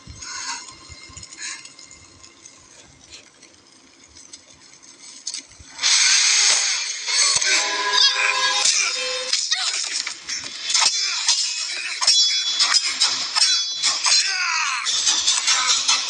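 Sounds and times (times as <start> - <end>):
film music: 0.0 - 16.0.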